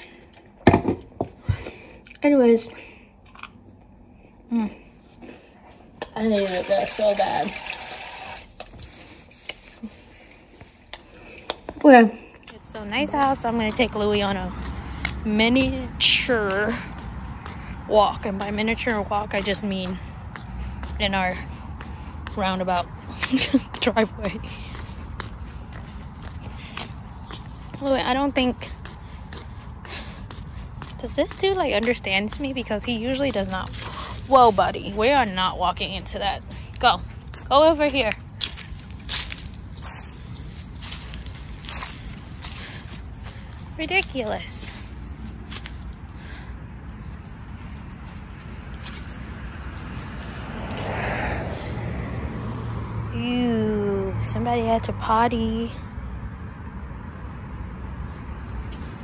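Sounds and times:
footsteps on asphalt: 0.0 - 4.2, 8.5 - 53.1, 56.2 - 59.0
vehicle passing: 1.7 - 59.0
woman's voice: 2.2 - 3.0, 4.5 - 4.9, 6.1 - 7.7, 11.8 - 21.6, 22.2 - 25.0, 27.7 - 28.9, 30.8 - 38.3, 43.6 - 45.0, 53.1 - 55.9.

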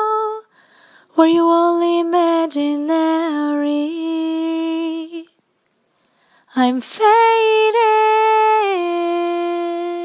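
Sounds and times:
woman singing unaccompanied: 1.1 - 5.4, 6.5 - 10.0.

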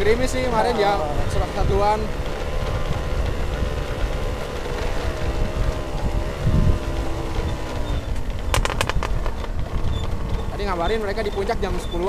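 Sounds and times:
small motorcycle engine running: 0.0 - 12.0
wind rumble on microphone: 0.0 - 12.0
rapid sharp clicks: 8.2 - 10.2.

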